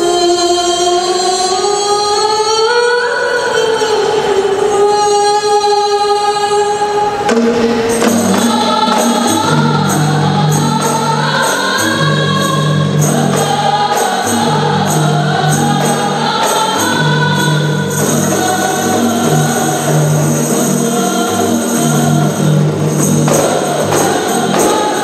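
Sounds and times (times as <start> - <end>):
women singing together: 0.0 - 25.0
frame drums beating: 7.3 - 25.0.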